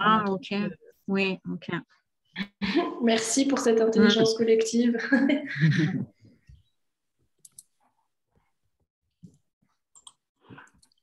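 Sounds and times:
computer mouse clicks: 7.4 - 7.8, 9.9 - 11.0.

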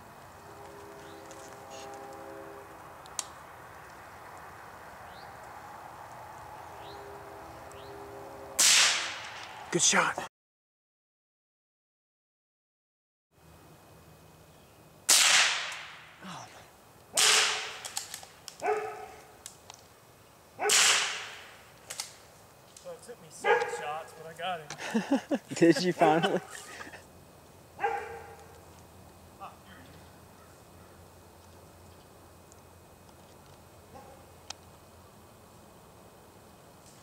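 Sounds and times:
gunshots: 8.6 - 9.4, 15.1 - 16.0, 17.2 - 18.0, 20.7 - 21.5
person's voice: 9.7 - 10.3, 25.5 - 26.6.

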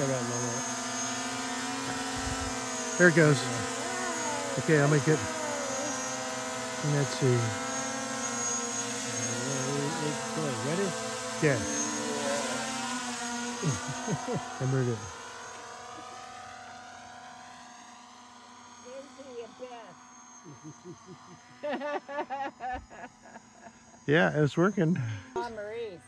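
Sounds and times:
drone propellers whining: 0.0 - 26.0.

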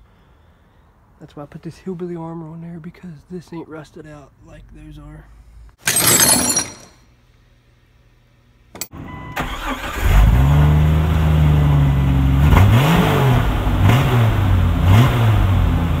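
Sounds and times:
car engine starting: 9.4 - 16.0
car engine revving: 10.0 - 16.0.

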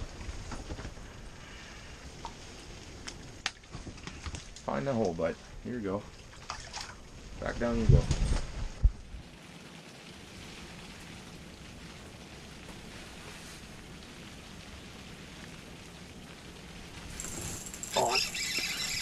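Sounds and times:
rain on fabric roof: 0.0 - 19.0.

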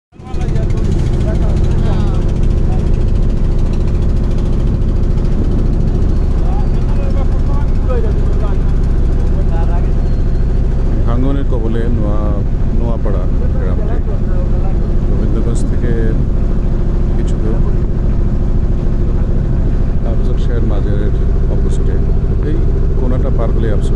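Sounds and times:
motorboat engine droning: 0.1 - 23.9
people talking: 0.2 - 3.4, 6.4 - 10.2, 10.9 - 16.3, 17.1 - 17.8, 20.0 - 23.9.

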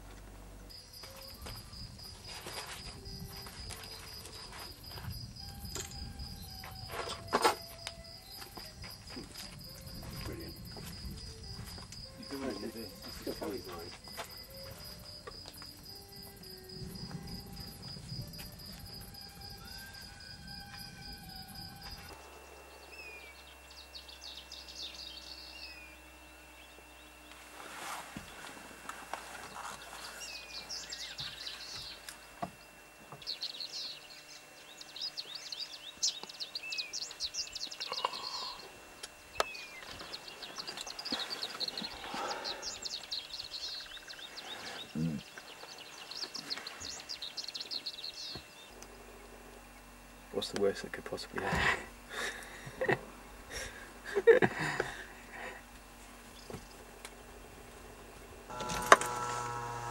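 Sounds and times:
insect trilling: 0.7 - 26.1, 33.2 - 57.0, 58.5 - 59.9.

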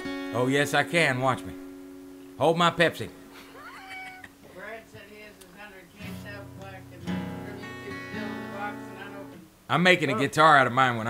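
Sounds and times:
guitar chords ringing: 0.0 - 3.6, 5.7 - 10.3.

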